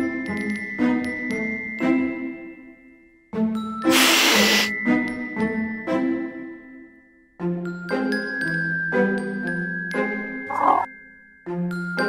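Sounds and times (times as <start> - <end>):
chiming mallet music: 0.0 - 3.9, 4.8 - 12.0
kitten hissing: 3.9 - 4.7.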